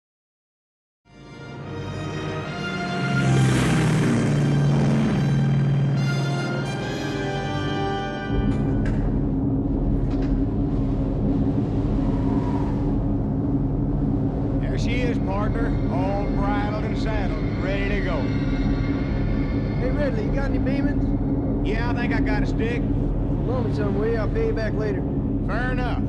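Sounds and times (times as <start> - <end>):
film score music with held tones: 1.1 - 26.0
aircraft piston engines droning: 1.4 - 26.0.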